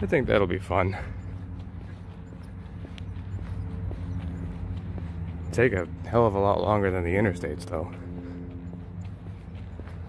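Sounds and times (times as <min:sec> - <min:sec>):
footsteps on pavement: 0:00.0 - 0:10.0
steady low hum: 0:00.0 - 0:10.0.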